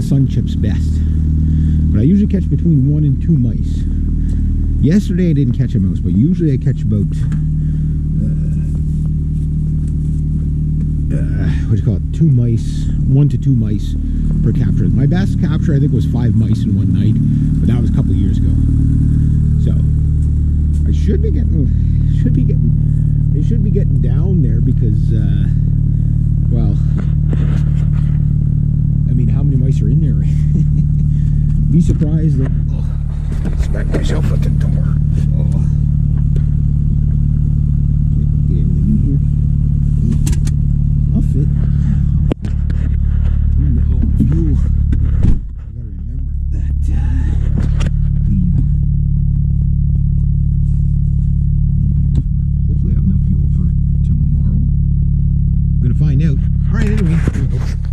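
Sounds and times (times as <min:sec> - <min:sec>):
car engine idling: 0:00.0 - 0:57.9
car bump: 0:30.8 - 0:38.0, 0:39.8 - 0:45.8.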